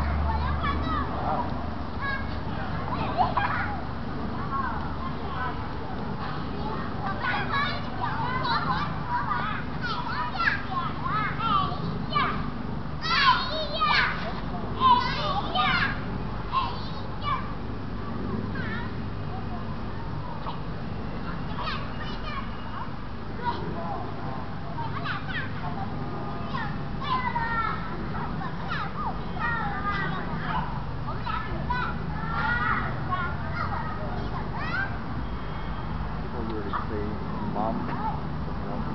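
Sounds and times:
children shouting: 0.0s - 5.6s, 6.2s - 17.6s, 18.5s - 37.1s
low background noise: 0.0s - 38.9s.

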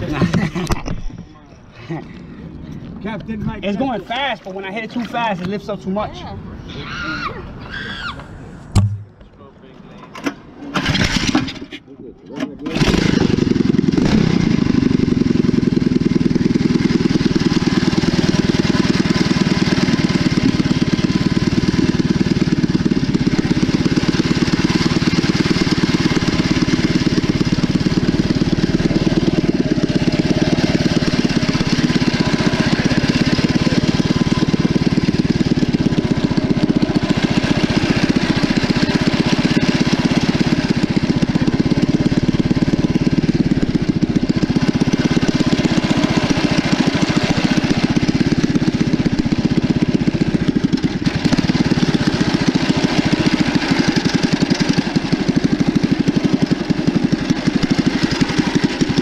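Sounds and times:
small engine running: 10.7s - 11.7s, 12.6s - 59.0s
propeller churning water: 12.8s - 59.0s.

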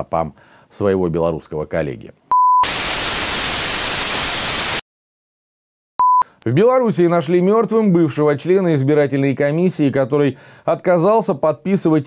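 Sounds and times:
television static hiss: 2.7s - 4.8s.

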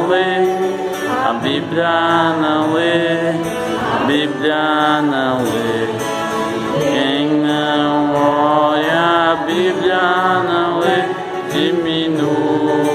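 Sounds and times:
children singing: 0.0s - 12.9s
man singing into a microphone: 0.0s - 12.9s.

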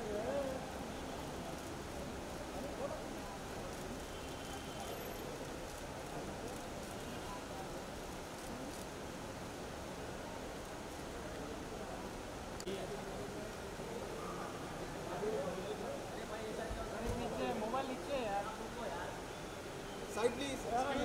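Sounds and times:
background hubbub: 0.0s - 21.0s.

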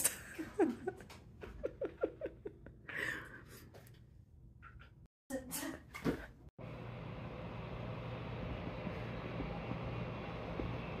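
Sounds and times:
air conditioner humming: 6.6s - 11.0s.

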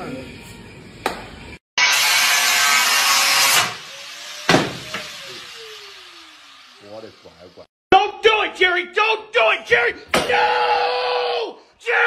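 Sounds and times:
whistle-like falling tone: 3.9s - 6.8s
sharp knock: 4.5s - 5.1s.

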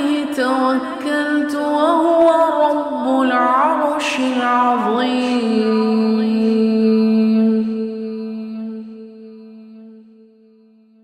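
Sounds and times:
person chanting a long note: 5.4s - 11.0s.

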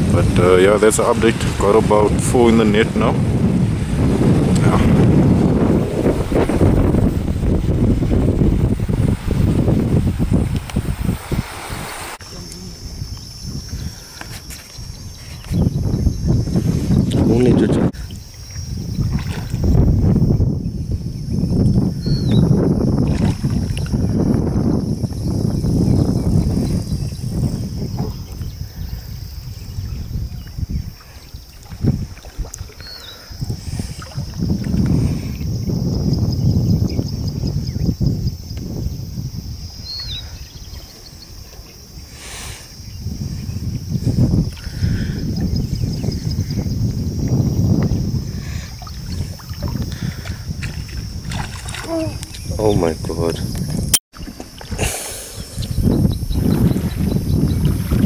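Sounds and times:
water sloshing around legs: 48.8s - 52.7s, 54.1s - 55.1s.

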